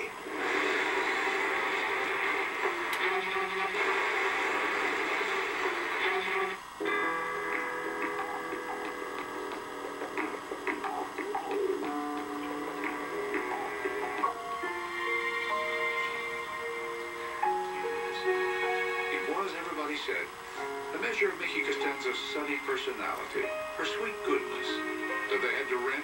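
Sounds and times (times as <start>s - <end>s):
television music sustained notes: 0.0s - 26.0s.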